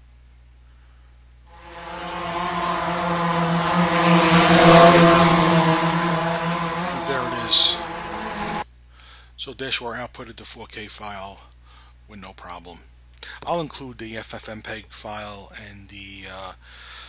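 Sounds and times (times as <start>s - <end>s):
motor droning hum with whine: 1.6s - 8.6s.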